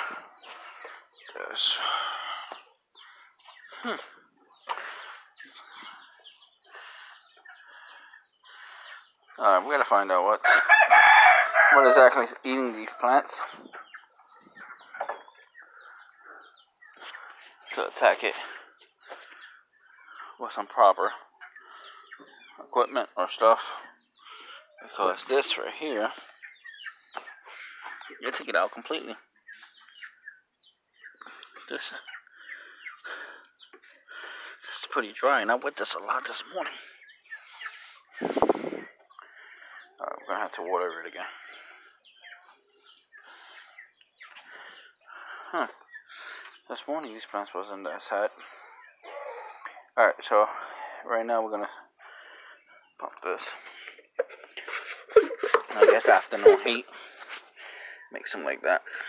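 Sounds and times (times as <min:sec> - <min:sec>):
chickens clucking: 0:00.0 - 0:59.0.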